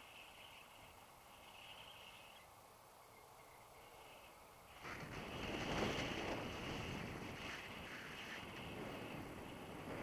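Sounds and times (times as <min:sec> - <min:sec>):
wind rushing over microphone: 0:04.7 - 0:10.0.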